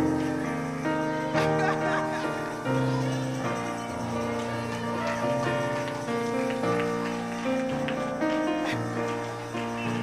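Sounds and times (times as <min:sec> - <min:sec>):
keyboard music with held chords: 0:00.0 - 0:10.0.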